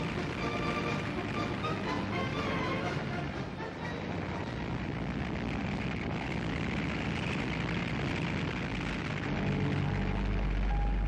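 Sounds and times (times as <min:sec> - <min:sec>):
aircraft engines droning: 0:00.0 - 0:11.0
deep low engine hum: 0:00.0 - 0:11.0.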